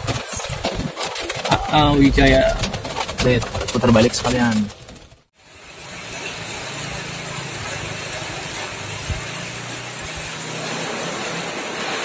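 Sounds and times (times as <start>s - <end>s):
truck engine running: 0.0s - 12.0s
rain hissing on wet street: 5.4s - 12.0s.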